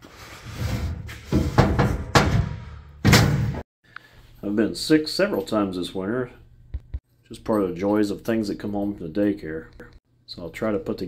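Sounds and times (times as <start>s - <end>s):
heavy thumps and knocks: 1.2s - 3.6s, 6.7s - 7.0s.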